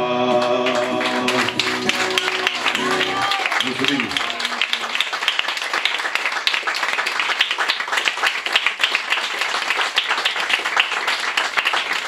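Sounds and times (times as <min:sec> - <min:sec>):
acoustic guitars strumming: 0:00.0 - 0:03.3.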